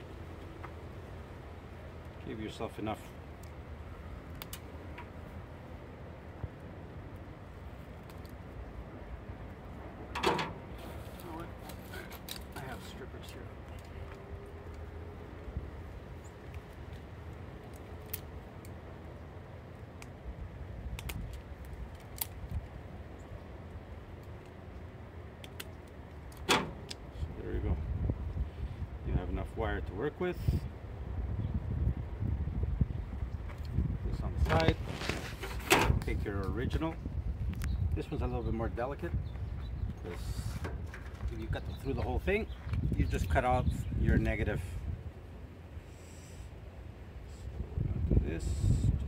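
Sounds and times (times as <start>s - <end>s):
cable and tool clicks and rustles: 7.8s - 8.4s, 10.2s - 14.9s, 16.4s - 18.8s, 20.8s - 22.8s, 25.3s - 27.1s.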